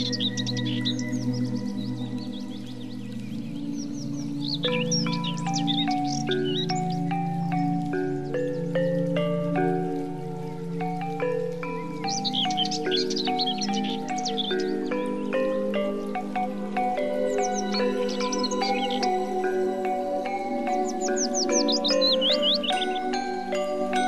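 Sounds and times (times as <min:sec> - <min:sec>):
high bird chirps: 0:00.0 - 0:09.3, 0:11.2 - 0:24.0
ambient background music: 0:00.0 - 0:24.0.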